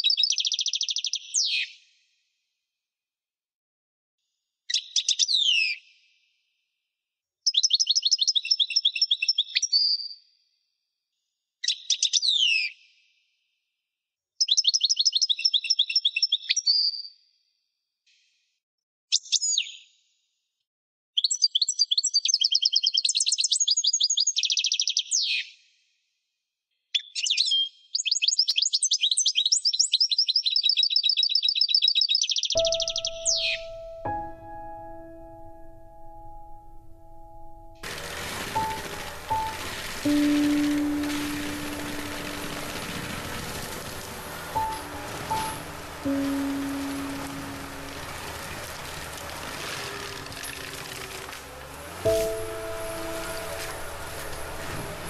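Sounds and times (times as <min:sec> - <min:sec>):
songbird singing: 0:29.4 - 0:34.4
soft piano music: 0:32.6 - 0:55.0.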